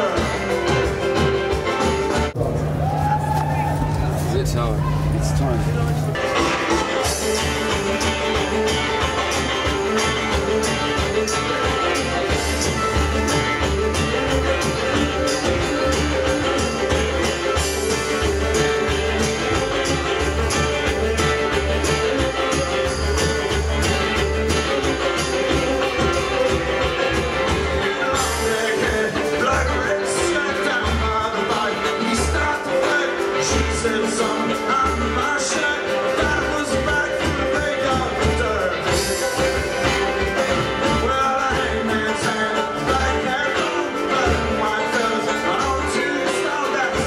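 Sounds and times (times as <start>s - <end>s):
mandolin: 0.0s - 2.5s, 4.2s - 47.0s
drums: 0.0s - 47.0s
upright bass: 0.0s - 47.0s
man calling out: 3.7s - 6.2s.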